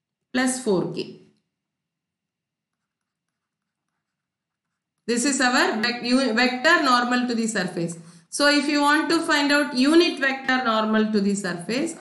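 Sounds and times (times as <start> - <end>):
stylus writing on tablet: 1.7 - 7.1.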